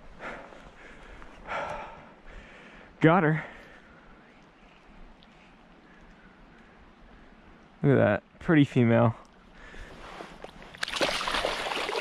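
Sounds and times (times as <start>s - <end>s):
fish splashing in water: 10.8s - 12.0s.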